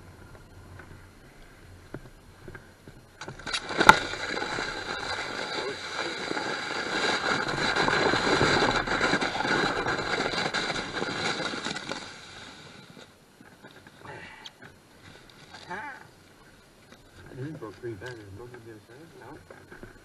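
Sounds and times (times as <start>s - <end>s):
sled scraping over snow: 0.0s - 14.0s.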